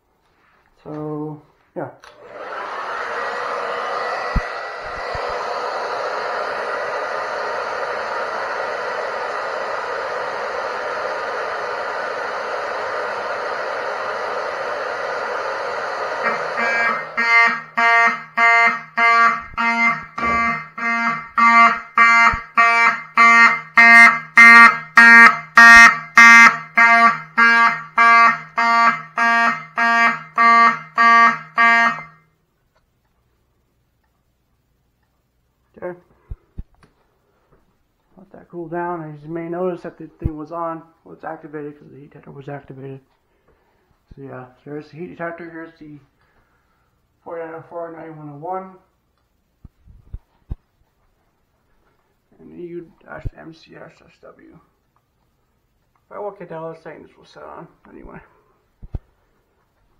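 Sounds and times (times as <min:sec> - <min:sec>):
hair dryer blowing: 0:02.1 - 0:17.8
fire alarm horns pulsing: 0:15.0 - 0:32.4.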